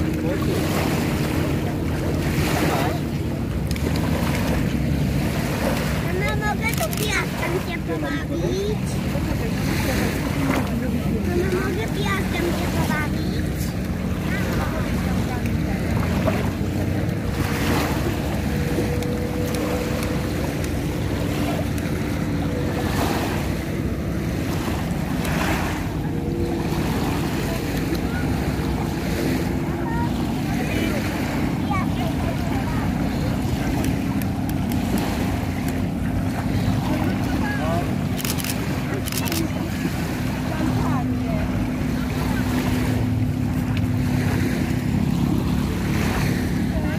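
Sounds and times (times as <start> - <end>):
small waves lapping on sand: 0.0 - 46.9.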